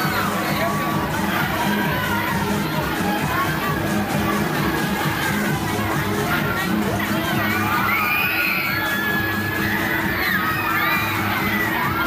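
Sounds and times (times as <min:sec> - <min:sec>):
ride music with low beat: 0:00.0 - 0:12.0.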